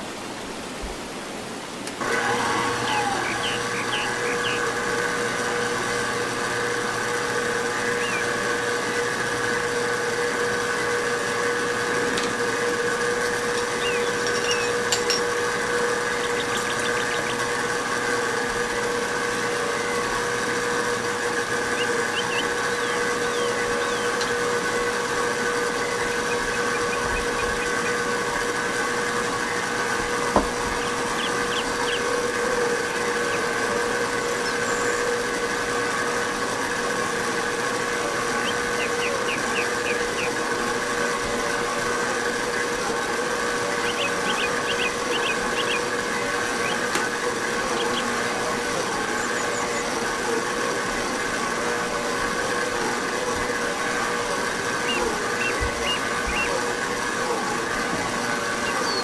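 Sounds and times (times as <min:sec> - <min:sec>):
stand mixer running: 0:02.0 - 0:59.0.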